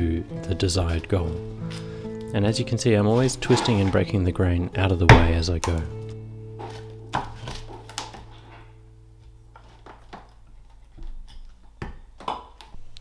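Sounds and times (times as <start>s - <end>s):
low sustained music chord: 0.0s - 9.8s
axe chopping wood: 5.1s - 5.8s.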